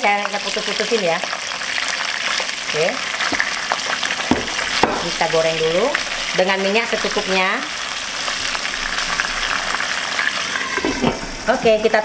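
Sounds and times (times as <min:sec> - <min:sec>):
oil sizzling in a pan: 0:00.0 - 0:12.0.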